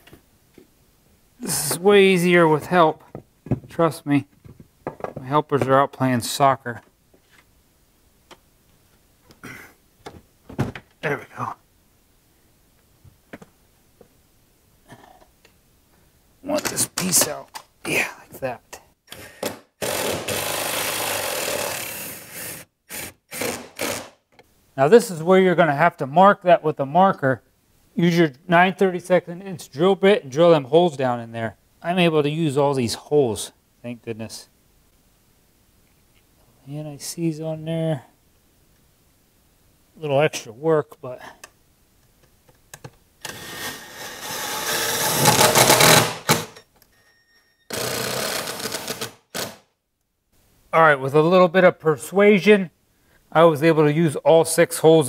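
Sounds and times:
cordless drill running: 0:19.8 - 0:24.1, 0:47.7 - 0:49.6.

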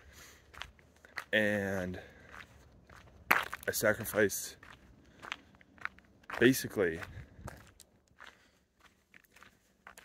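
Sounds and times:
faint footsteps: 0:00.0 - 0:10.0.

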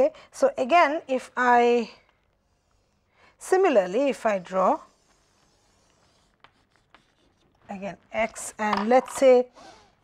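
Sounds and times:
chalk scraping on blackboard: 0:02.4 - 0:07.6.

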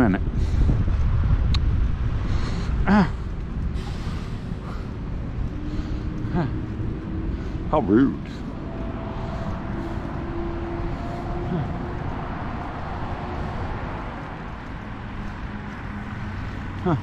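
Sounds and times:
faint engine hum: 0:00.0 - 0:17.0
road traffic rumble: 0:00.0 - 0:17.0
wind on microphone: 0:00.0 - 0:17.0.

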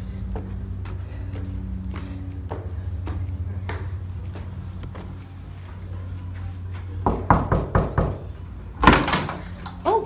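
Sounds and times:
low steady hum: 0:00.0 - 0:10.0
knuckles knocking on door: 0:07.0 - 0:08.3
door unlatching and opening: 0:08.8 - 0:09.5.

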